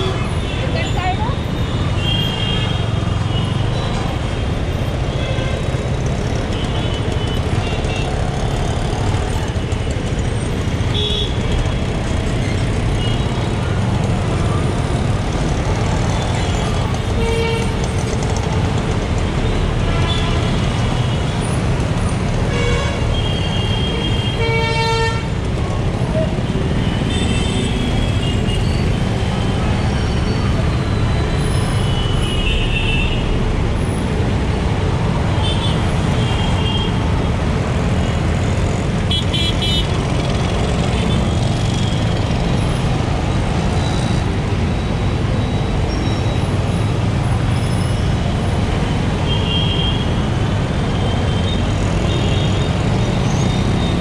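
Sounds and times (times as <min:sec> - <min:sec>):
traffic engines rumbling: 0:00.0 - 0:54.0.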